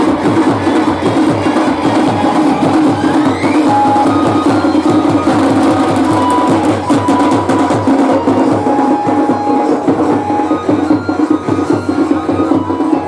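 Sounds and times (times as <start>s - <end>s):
fast steady drumbeat: 0.0s - 13.0s
folk dance music: 0.0s - 13.0s.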